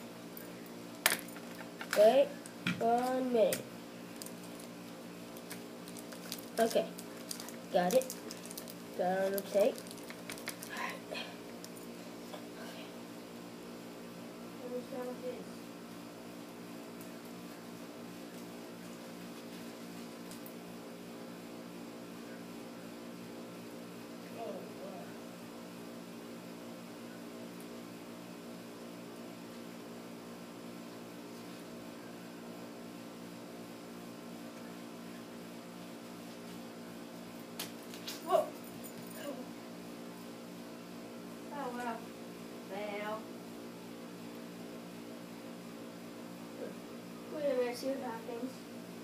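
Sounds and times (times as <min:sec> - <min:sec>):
steady mechanical hum: 0:00.0 - 0:49.0.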